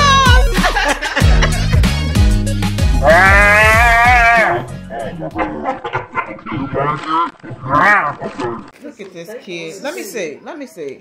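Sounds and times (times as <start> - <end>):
music with high sung note: 0.0 - 5.0.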